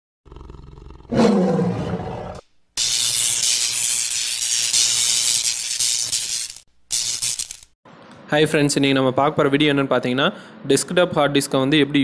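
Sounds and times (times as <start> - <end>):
monster growling roar: 0.3 - 2.4.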